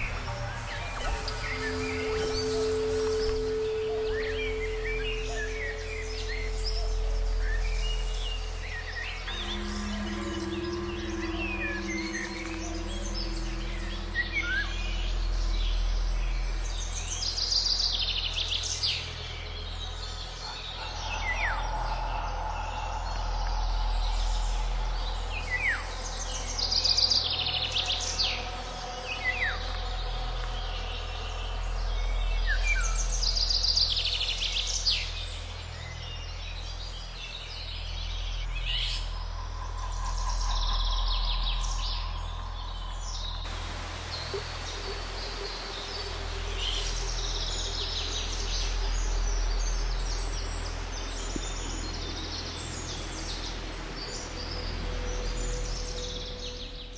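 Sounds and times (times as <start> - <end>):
songbirds singing: 0.0 - 56.9
steady low rumble: 0.0 - 56.9.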